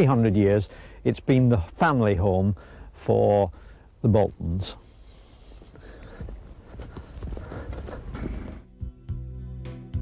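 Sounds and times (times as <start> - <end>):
outdoor background noise: 0.0 - 9.8
footsteps on hard path: 5.4 - 8.7.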